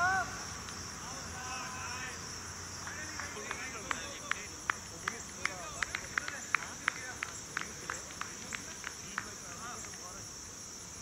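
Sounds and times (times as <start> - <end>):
insect chirps: 0.0 - 11.0
insect chorus drone: 0.0 - 11.0.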